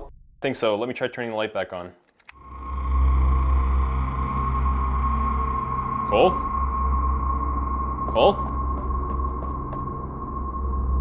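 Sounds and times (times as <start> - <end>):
ominous low drone with high tone: 2.4 - 11.0.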